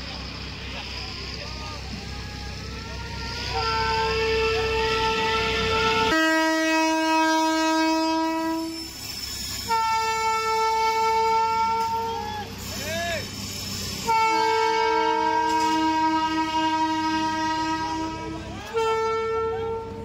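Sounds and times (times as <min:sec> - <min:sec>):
train horn blasts: 0:03.0 - 0:09.0, 0:09.6 - 0:12.2, 0:14.0 - 0:20.0.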